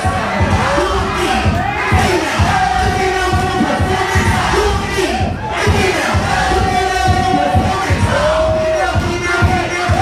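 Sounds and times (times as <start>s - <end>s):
crowd cheering and shouting: 0.0s - 10.0s
dance music with thumping beat: 0.0s - 10.0s.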